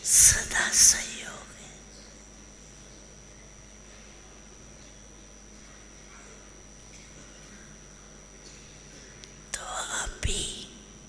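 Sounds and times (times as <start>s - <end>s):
woman's amplified voice: 0.0s - 1.7s, 9.6s - 10.7s
faint high whine: 0.0s - 11.0s
sound system hum: 0.0s - 11.0s.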